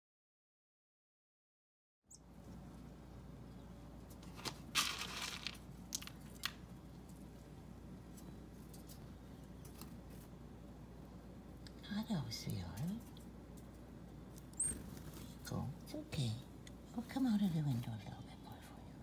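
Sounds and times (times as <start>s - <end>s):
faint low hum: 2.1s - 19.0s
small crunchy clicks: 4.1s - 7.2s
crinkling rustle: 4.1s - 7.4s.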